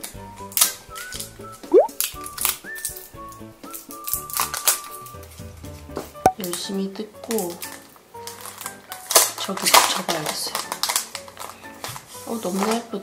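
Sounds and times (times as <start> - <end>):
light background music: 0.0 - 13.0.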